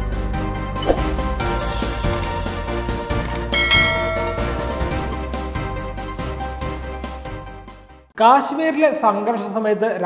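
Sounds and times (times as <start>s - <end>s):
background music: 0.0s - 9.4s
bright bell-like chime: 3.5s - 5.2s.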